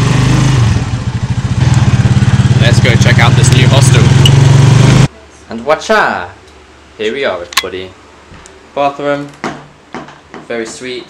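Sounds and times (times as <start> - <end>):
small motorcycle engine running: 0.0 - 5.1.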